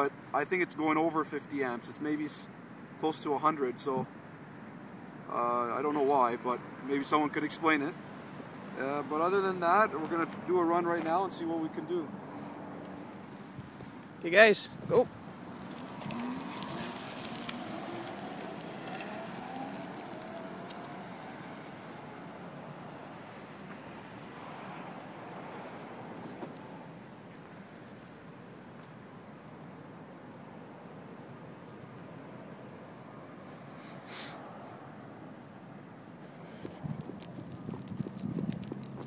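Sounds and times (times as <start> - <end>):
electric hub motor whine: 15.2 - 24.2
thin high electronic tone: 15.6 - 23.2.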